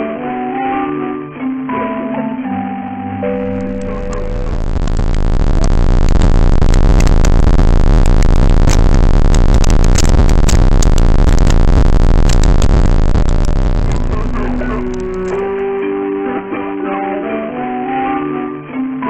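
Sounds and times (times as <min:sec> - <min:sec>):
distorted jingle with crackling: 0:03.2 - 0:15.9.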